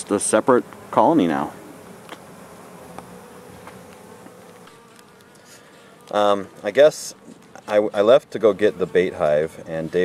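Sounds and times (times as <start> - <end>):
honeybees buzzing: 0.0 - 10.0.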